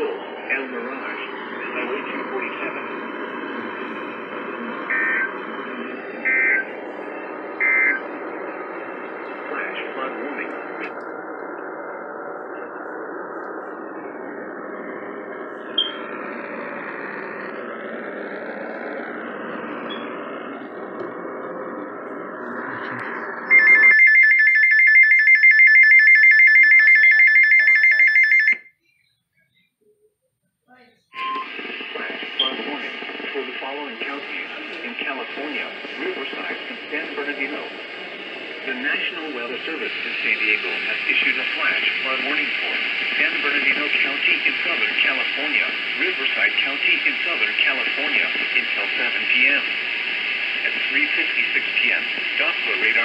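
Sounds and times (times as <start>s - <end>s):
radio hiss and static: 0.0s - 23.9s, 31.2s - 53.0s
short beeps: 7.6s - 8.0s, 15.8s - 16.0s, 31.1s - 31.5s.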